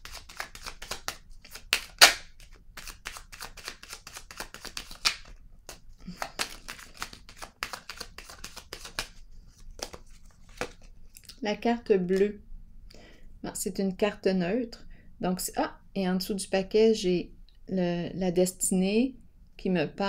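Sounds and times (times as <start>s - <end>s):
cards being shuffled: 0.0s - 11.2s.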